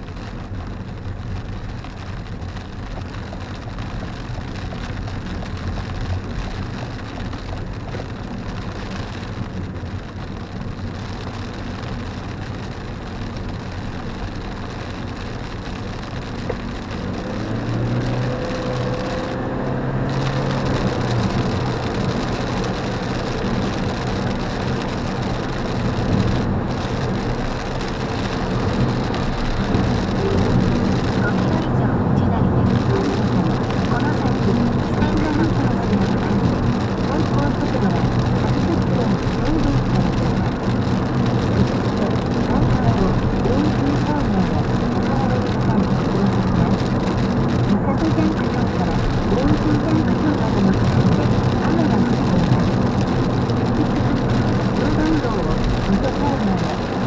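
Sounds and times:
low engine and road drone: 0.0 - 57.0.

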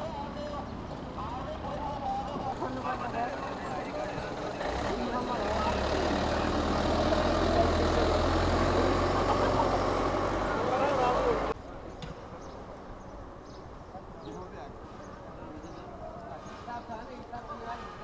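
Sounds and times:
truck engine driving past: 0.0 - 11.6.

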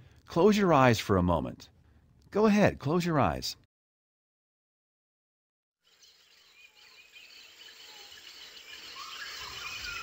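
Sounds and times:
insects buzzing: 5.9 - 10.0
short bird chirps: 6.0 - 10.0.

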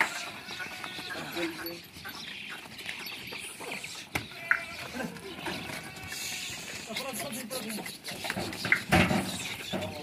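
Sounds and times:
goat sounds: 0.0 - 10.0
voices: 0.0 - 10.0.

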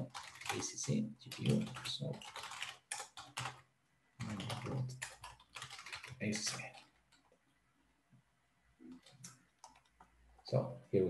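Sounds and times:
typing on computer keyboard: 0.0 - 3.6, 4.2 - 7.3, 8.9 - 10.1.

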